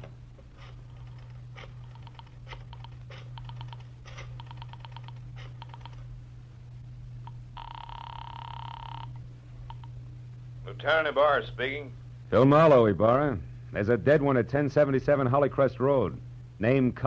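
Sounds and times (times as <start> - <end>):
buzzing ring tone: 0.0 - 12.6
low steady hum: 0.0 - 17.0
telephone dial clicking: 0.6 - 6.0.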